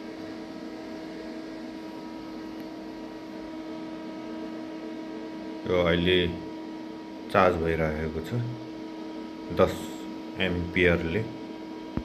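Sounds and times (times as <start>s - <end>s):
battery charger humming: 0.0s - 12.0s
fan-like hiss: 0.0s - 12.0s.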